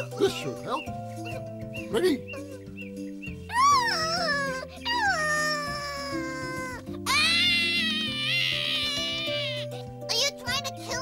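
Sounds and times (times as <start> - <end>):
background music: 0.0 - 11.0
cartoon monkey wailing in pain: 3.5 - 9.8.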